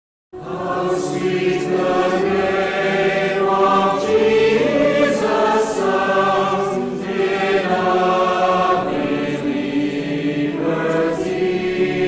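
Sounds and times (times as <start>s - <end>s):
choir singing long notes: 0.4s - 12.0s.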